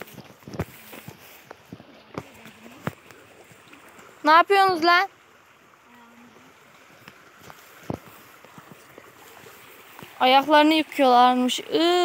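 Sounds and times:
creek water flowing over stones: 0.0 - 12.0.

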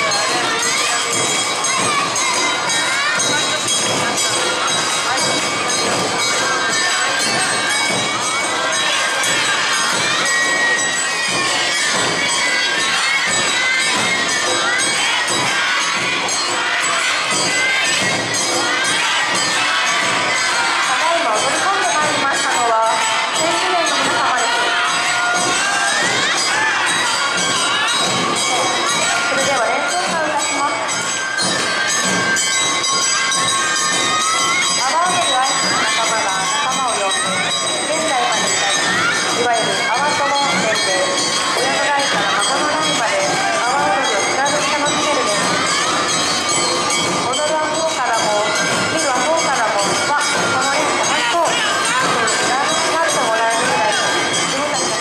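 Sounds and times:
crowd of high voices shouting: 0.0 - 55.0
festival music: 0.0 - 55.0.

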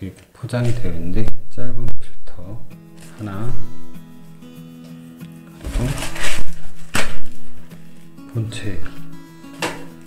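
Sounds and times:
background music with steady tones: 0.6 - 10.0
wrapping sheet crinkling: 2.9 - 8.2.

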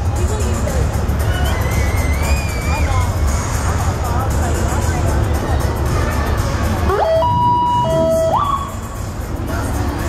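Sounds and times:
music with low pulsing beat: 2.8 - 10.0
siren whooping: 6.9 - 8.8.

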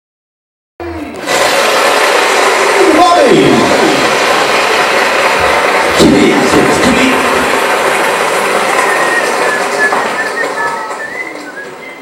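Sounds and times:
bar crowd voices: 0.8 - 12.0.

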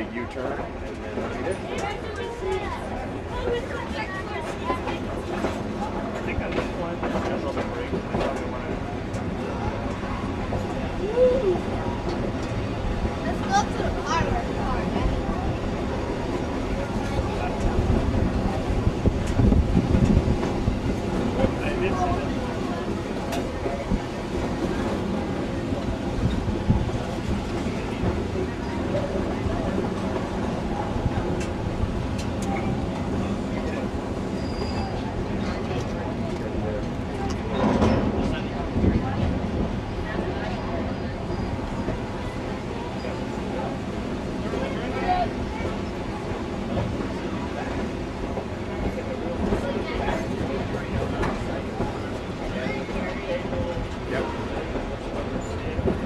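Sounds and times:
train cars rumbling: 0.0 - 56.0.

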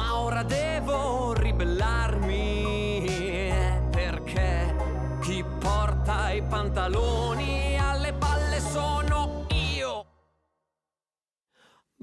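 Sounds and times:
faint breath: 11.5 - 12.0.

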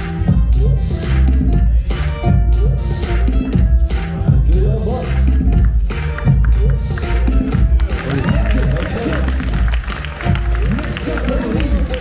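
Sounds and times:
loud bass-heavy music: 0.0 - 12.0
crowd voices and shouts: 3.9 - 12.0.

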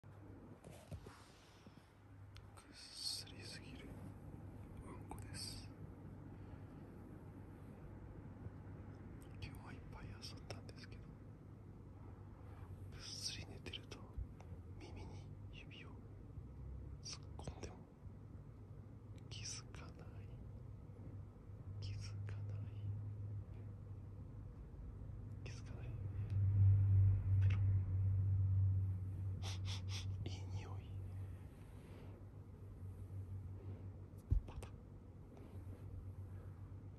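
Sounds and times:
low steady hum: 0.0 - 36.9
person whispering softly: 0.7 - 5.8, 9.2 - 11.2, 12.4 - 16.1, 17.0 - 17.9, 19.2 - 20.5, 21.8 - 23.7, 25.3 - 26.5, 27.3 - 27.8, 29.3 - 32.3, 33.4 - 36.6.

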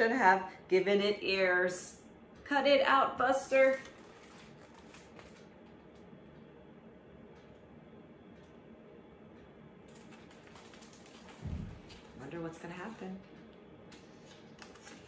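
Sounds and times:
book thumping down: 11.4 - 11.8
book clicks in hands: 13.9 - 15.0.

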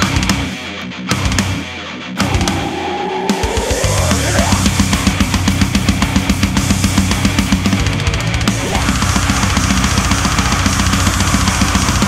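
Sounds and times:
distorted guitars: 0.0 - 12.0
fast kick drum: 4.6 - 12.0.

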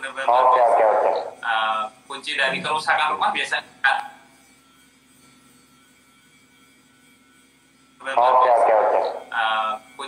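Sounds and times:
faint steady hum with tones: 0.0 - 10.0.

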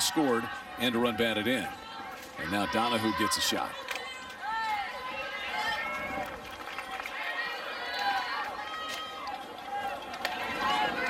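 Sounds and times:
crowd calling and chattering: 0.0 - 11.0.

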